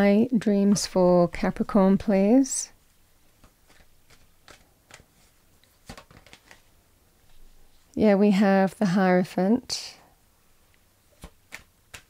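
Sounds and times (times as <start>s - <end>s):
cards being shuffled: 3.4s - 6.7s, 11.1s - 12.0s.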